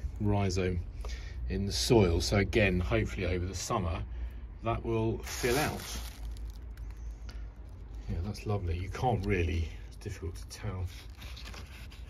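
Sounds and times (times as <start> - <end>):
leaves rustling: 5.2 - 9.3.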